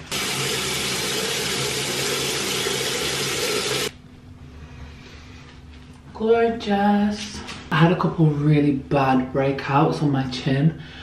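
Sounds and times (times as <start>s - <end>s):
tap water running into sink: 0.0s - 3.9s.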